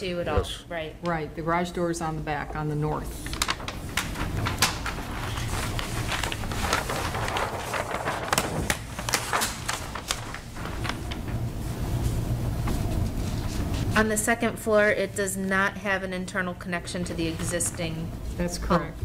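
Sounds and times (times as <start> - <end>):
steady low hum: 0.0 - 19.0
paper rustling and crackling: 3.1 - 14.0.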